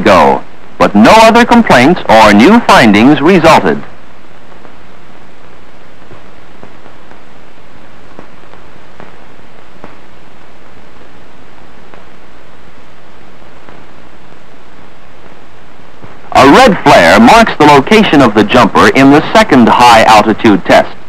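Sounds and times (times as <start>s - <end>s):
film soundtrack hiss: 0.0s - 21.0s.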